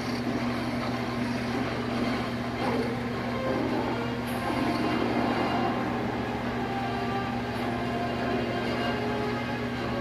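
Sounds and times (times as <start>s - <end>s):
film soundtrack rumbling: 0.0s - 10.0s.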